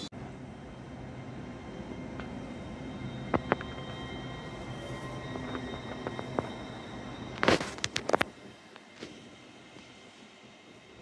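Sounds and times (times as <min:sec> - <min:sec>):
train humming: 0:00.0 - 0:11.0.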